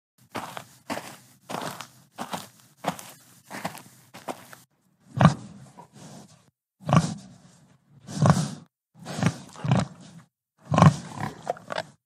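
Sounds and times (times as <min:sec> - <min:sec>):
pig grunting: 0:05.0 - 0:12.0.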